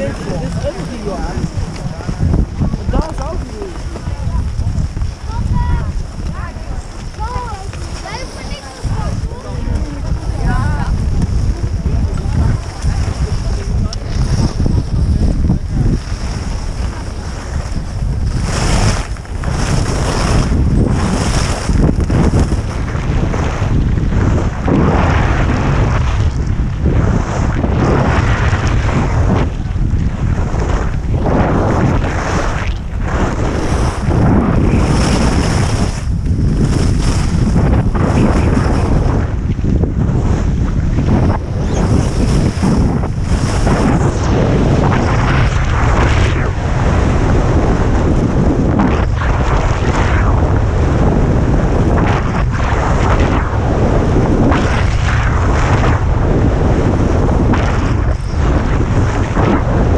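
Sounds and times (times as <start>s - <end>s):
skis scraping on crusty snow: 0.0s - 14.9s, 15.8s - 26.3s, 30.4s - 51.5s
wind buffeting microphone: 0.0s - 59.9s.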